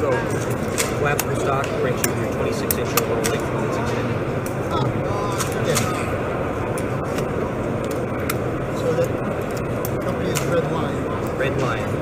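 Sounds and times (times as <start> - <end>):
distant crowd voices: 0.0 - 12.0.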